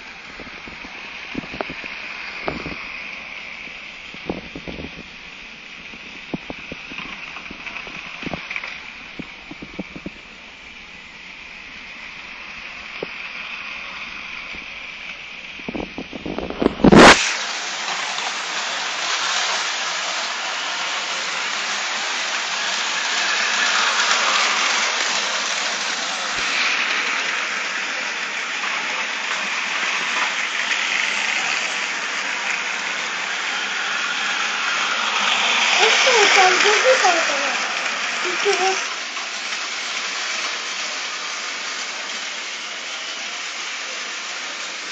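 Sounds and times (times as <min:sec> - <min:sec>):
toy train motors whirring: 0:00.0 - 0:44.9
wheels rattling on plastic track: 0:05.8 - 0:10.3, 0:15.6 - 0:44.9.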